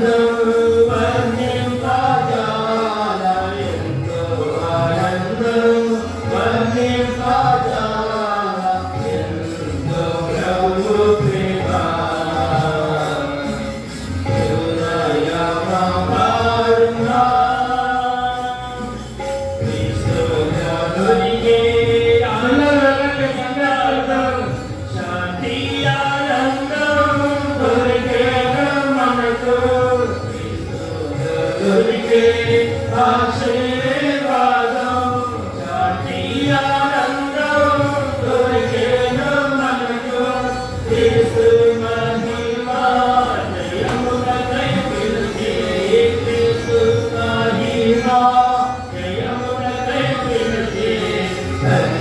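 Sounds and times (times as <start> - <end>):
singers singing worship song: 0.0 - 52.0.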